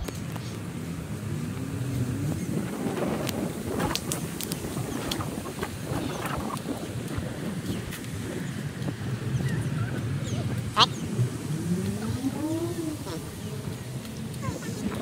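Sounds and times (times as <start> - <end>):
wind noise on microphone: 0.0 - 15.0
footsteps on paved path: 2.6 - 15.0.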